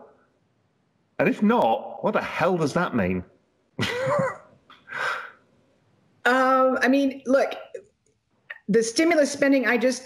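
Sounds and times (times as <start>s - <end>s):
person laughing: 3.8s - 4.4s.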